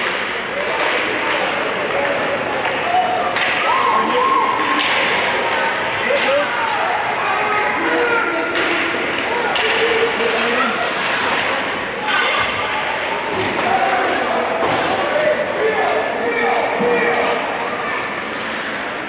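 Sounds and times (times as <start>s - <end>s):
puck stick and board impacts: 0.0s - 6.8s, 8.4s - 12.7s.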